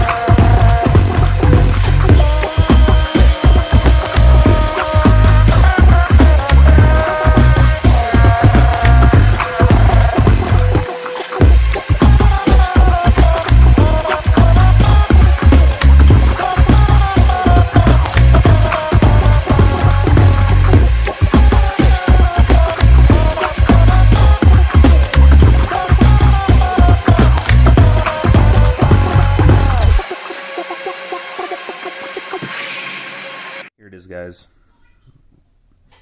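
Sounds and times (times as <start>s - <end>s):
background music with heavy bass beat: 0.0s - 30.1s.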